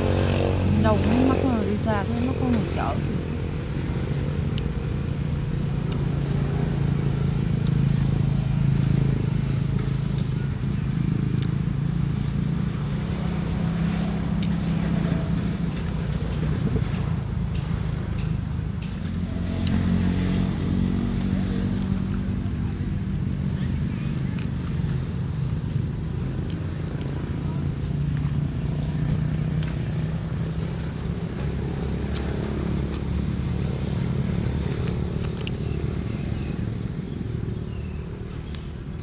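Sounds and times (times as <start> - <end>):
vehicle engine humming: 0.0 - 39.0.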